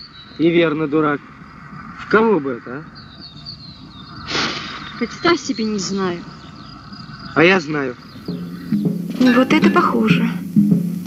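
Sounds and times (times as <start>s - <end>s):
faint crickets chirping: 0.0s - 11.0s
film soundtrack hiss: 0.0s - 11.0s
short loud hissing burst: 4.2s - 5.0s.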